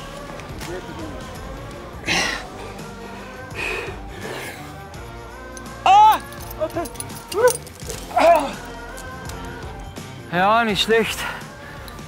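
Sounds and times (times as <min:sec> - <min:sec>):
background music: 0:00.0 - 0:12.0
heavy breath: 0:02.0 - 0:04.9.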